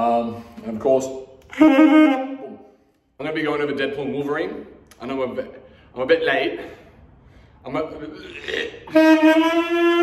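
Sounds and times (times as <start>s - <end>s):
saxophone long held note: 8.9s - 10.0s.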